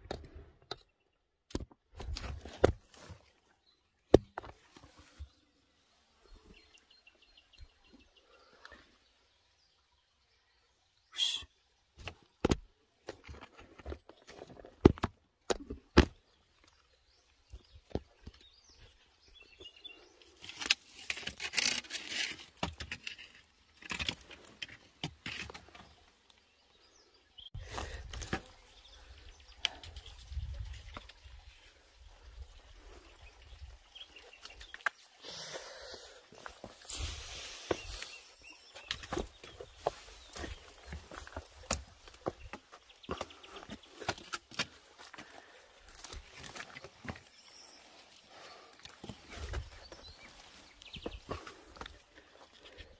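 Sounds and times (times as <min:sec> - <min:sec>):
wind rumble on microphone: 0:30.0 - 0:31.1.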